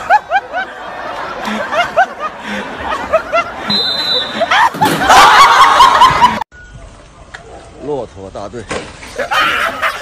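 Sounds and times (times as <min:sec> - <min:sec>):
group laughing loudly: 0:00.0 - 0:06.5, 0:09.1 - 0:10.0.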